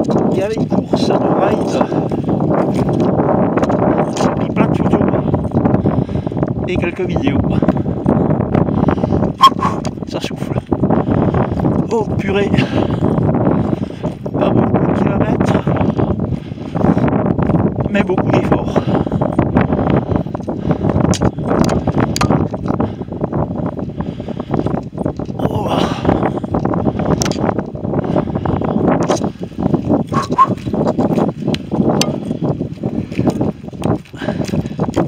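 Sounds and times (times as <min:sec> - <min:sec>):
wind noise on microphone: 0:00.0 - 0:35.0
hard breathing: 0:01.6 - 0:02.6, 0:05.1 - 0:06.6, 0:07.4 - 0:10.0, 0:10.7 - 0:11.9, 0:12.5 - 0:14.4, 0:15.4 - 0:17.4, 0:18.6 - 0:35.0.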